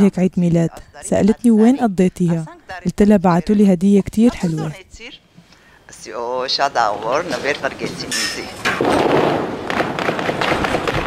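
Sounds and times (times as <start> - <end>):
explosion: 8.6 - 11.0
sharp cracks: 8.6 - 11.0.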